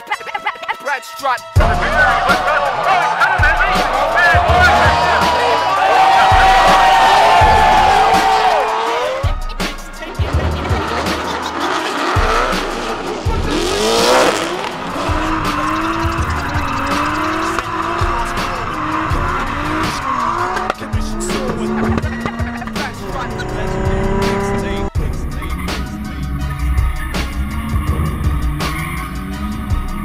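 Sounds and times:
hip-hop music with bass beat: 0:00.0 - 0:30.0
car engines revving: 0:01.6 - 0:30.0.

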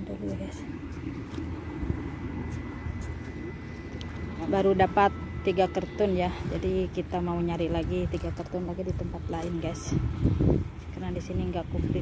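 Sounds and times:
motor vehicles rumbling: 0:00.0 - 0:12.0.

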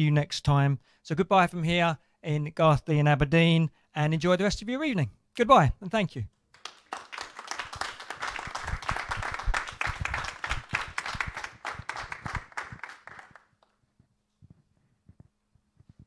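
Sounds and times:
audience applauding: 0:06.6 - 0:13.5.

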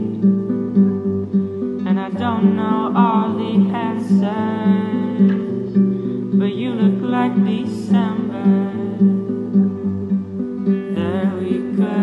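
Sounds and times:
acoustic guitar accompaniment: 0:00.0 - 0:12.0
man singing: 0:01.9 - 0:05.6, 0:10.9 - 0:12.0.

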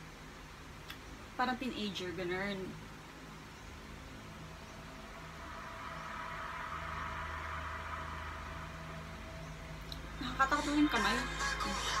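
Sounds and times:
low hum: 0:02.8 - 0:12.0
hissing swell: 0:04.8 - 0:10.2.

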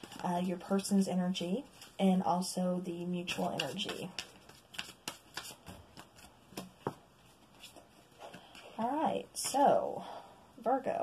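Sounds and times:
cards being shuffled: 0:00.0 - 0:00.5, 0:03.3 - 0:08.8.

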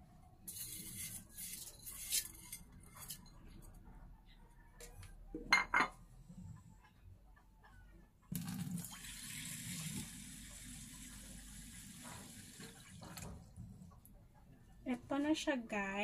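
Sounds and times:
dishware clinking: 0:05.4 - 0:06.0.

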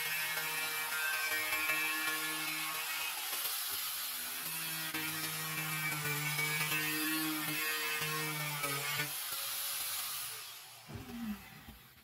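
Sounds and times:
angle grinder cutting plywood: 0:00.0 - 0:12.0.

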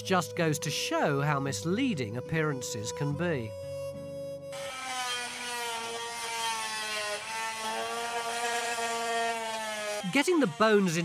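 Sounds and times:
angle grinder grinding rock: 0:04.5 - 0:11.0.

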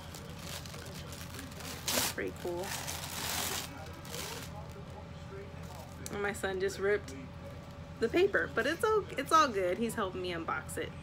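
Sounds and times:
wrapping paper crinkling and tearing: 0:00.0 - 0:04.9
quiet paper rustling: 0:00.0 - 0:06.0.

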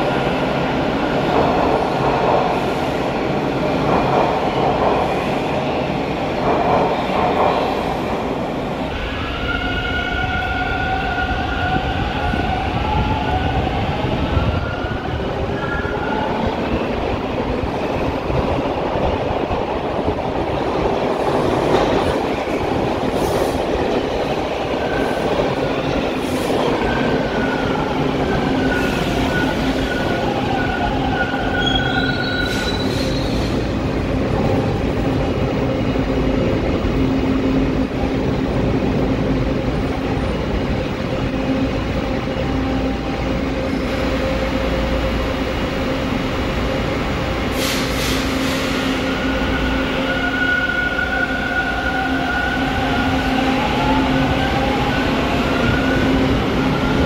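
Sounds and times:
train wheels rumbling on rail: 0:00.0 - 0:57.0.

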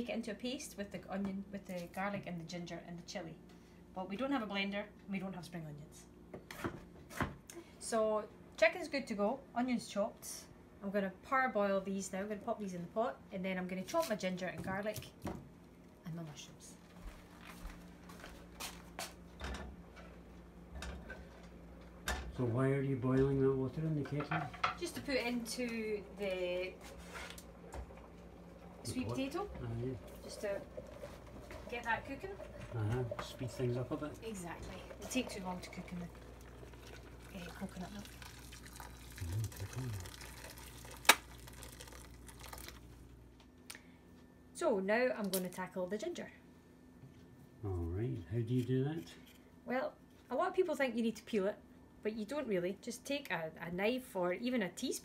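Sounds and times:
low steady hum: 0:00.0 - 0:55.0
water pouring into saucepan: 0:28.0 - 0:34.2, 0:34.9 - 0:42.9.

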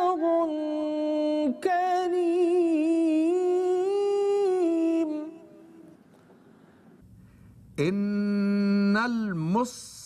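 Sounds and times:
person chanting recitation: 0:07.8 - 0:10.0.

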